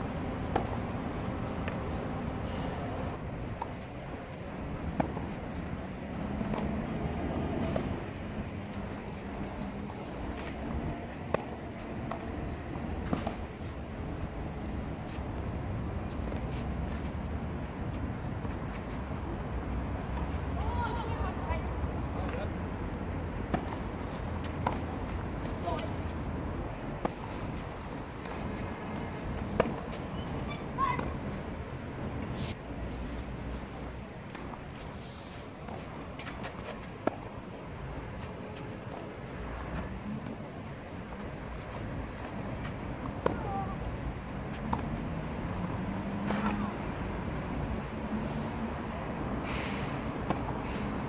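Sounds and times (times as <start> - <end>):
outdoor background noise: 0.0 - 51.0
tennis ball struck by rackets: 11.3 - 12.2, 29.5 - 30.0.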